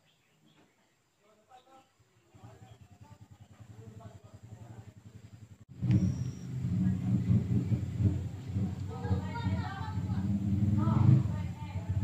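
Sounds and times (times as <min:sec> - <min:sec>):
vehicle engine rumble: 0:02.0 - 0:12.0.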